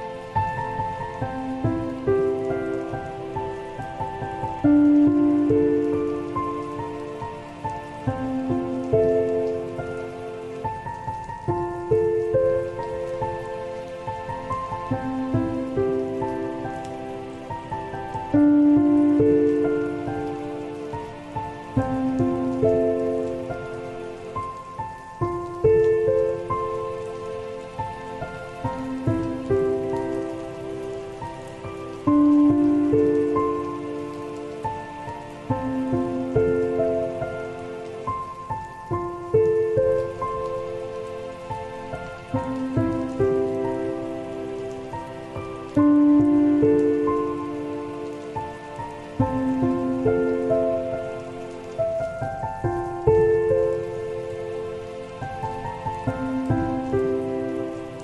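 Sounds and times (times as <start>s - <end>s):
rain falling: 0.0s - 58.0s
soft solo piano: 0.0s - 58.0s.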